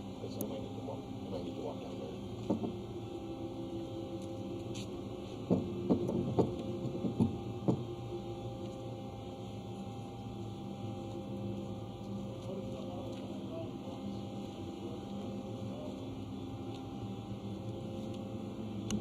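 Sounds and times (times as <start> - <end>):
machinery hum: 0.0 - 19.0.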